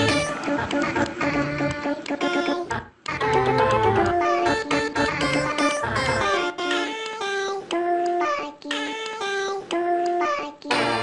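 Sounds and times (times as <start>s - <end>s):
high childlike voice singing: 0.0s - 11.0s.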